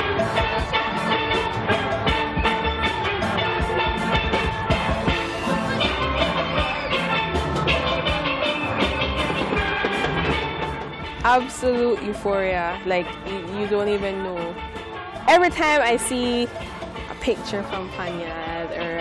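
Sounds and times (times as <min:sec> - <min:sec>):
steel band playing: 0:00.0 - 0:19.0.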